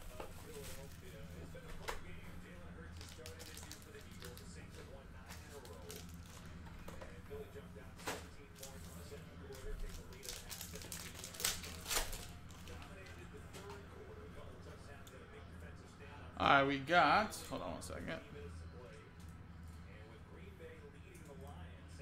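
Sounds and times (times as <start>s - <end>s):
steady low hum: 0.0s - 22.0s
wrapper crinkling and tearing: 3.0s - 4.7s, 5.3s - 6.5s, 9.5s - 12.9s.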